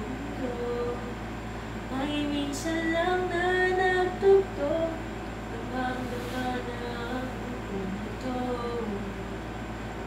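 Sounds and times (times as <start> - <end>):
woman humming a melody: 0.0 - 1.2.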